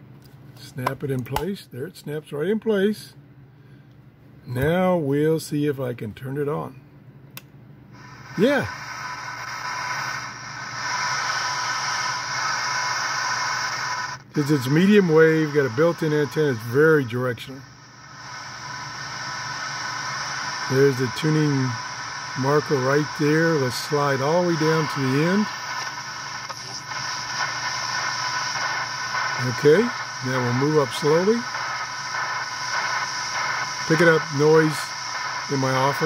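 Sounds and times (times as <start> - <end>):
faint electrical buzz: 0.0 - 36.0
radio static hiss: 8.0 - 36.0.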